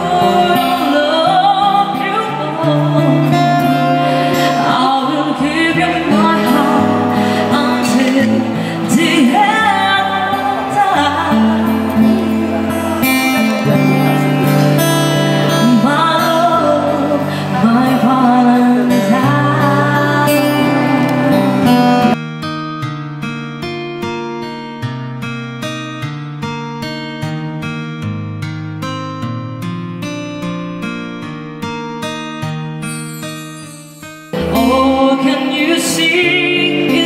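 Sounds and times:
woman singing into microphone: 0:00.0 - 0:14.2, 0:14.8 - 0:22.2, 0:34.4 - 0:37.0
acoustic guitar: 0:00.0 - 0:37.0.

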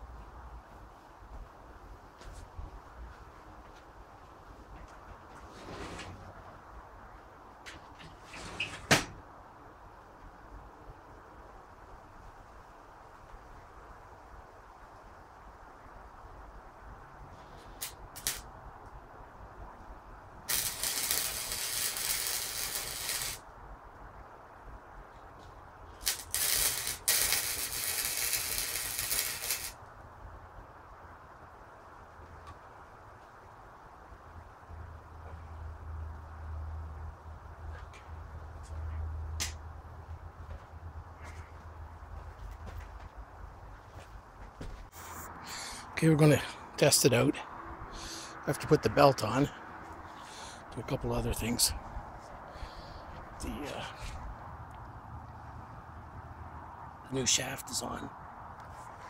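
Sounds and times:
hissing spray: 0:20.5 - 0:23.4, 0:26.0 - 0:29.8.

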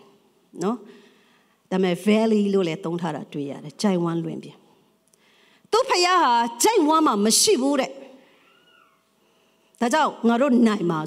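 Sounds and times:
woman speaking through microphone: 0:05.7 - 0:08.2, 0:09.8 - 0:11.0.

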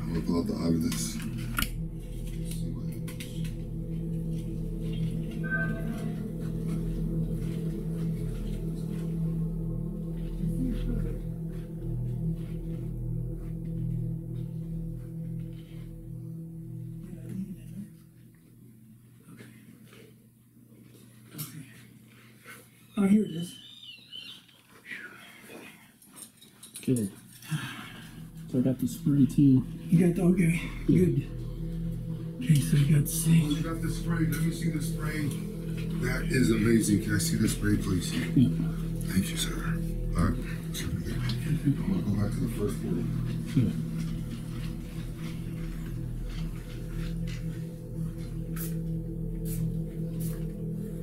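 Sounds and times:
low ambient drone: 0:00.0 - 0:51.0
brief higher tone: 0:04.3 - 0:11.7.

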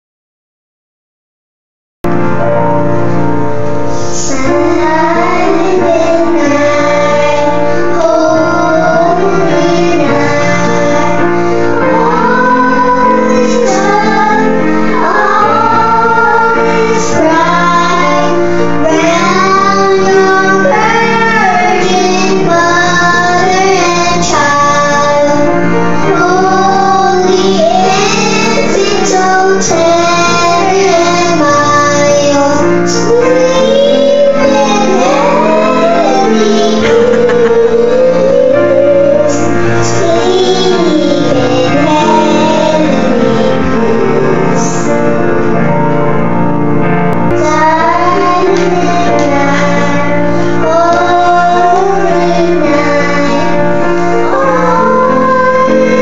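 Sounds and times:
grand piano accompaniment: 0:02.0 - 0:56.0
children singing: 0:04.0 - 0:45.8, 0:47.2 - 0:56.0.

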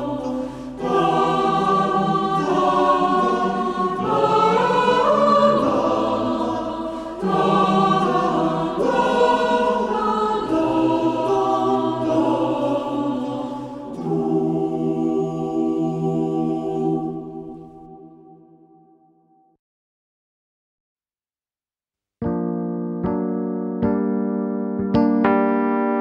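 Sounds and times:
choir singing: 0:00.0 - 0:18.8.

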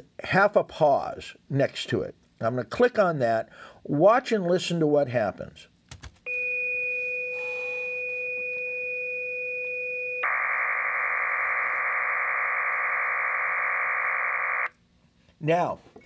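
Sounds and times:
two steady pure tones: 0:06.3 - 0:14.7
warbling data tones: 0:10.2 - 0:14.7.

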